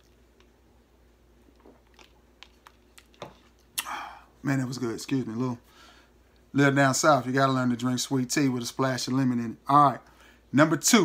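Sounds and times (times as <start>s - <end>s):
man exhaling: 3.8s - 4.3s.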